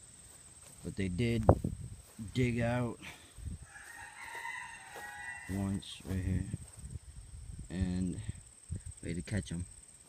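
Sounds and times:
faint rooster crowing: 3.6 - 6.1.

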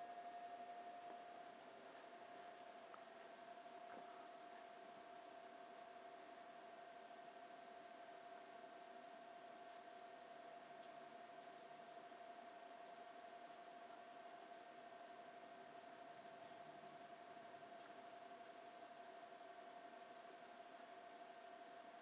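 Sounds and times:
thin hum: 0.0 - 7.1
faint steady hiss: 0.0 - 22.0.

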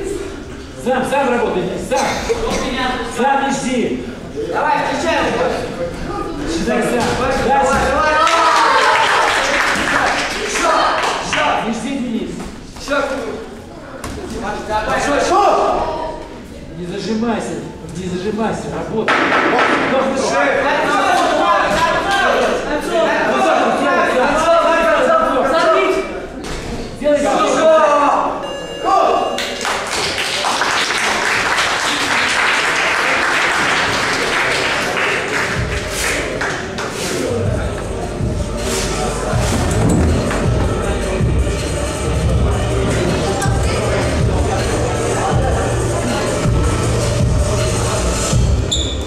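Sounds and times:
voices calling out in a hall: 0.0 - 49.0
audience applauding: 8.2 - 11.4, 29.4 - 37.0.

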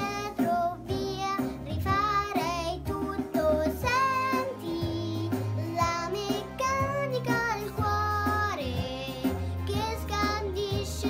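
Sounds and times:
girl singing with vibrato: 0.0 - 11.0
instrumental accompaniment with bass: 0.0 - 11.0.

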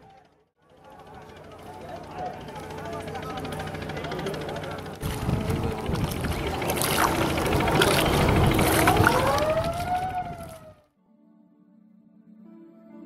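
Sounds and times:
low rumble with knocks: 5.0 - 10.7
distant wailing siren: 5.0 - 10.9.

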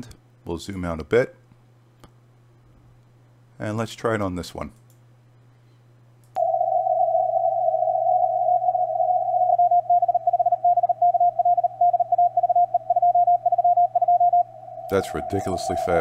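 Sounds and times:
faint low hum: 0.0 - 16.0
click: 4.8 - 5.0, 6.2 - 6.4
morse code tone: 6.4 - 16.0.

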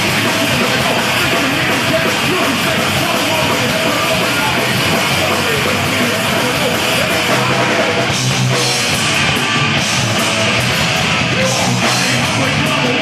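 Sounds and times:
bass guitar: 0.0 - 13.0
distorted electric guitar: 0.0 - 13.0
drums: 0.0 - 13.0.

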